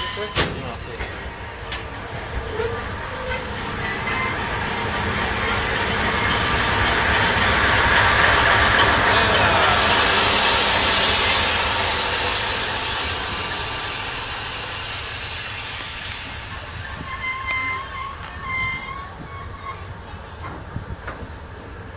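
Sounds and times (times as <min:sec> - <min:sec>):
diesel locomotive engine and fans: 0:00.0 - 0:21.9
rail rumble: 0:00.0 - 0:21.9
hiss: 0:01.8 - 0:19.0.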